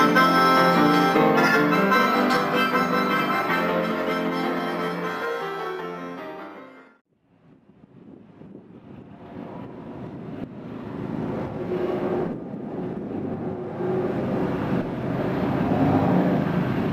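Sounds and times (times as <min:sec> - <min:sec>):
steady rumbling noise: 0:07.1 - 0:16.9.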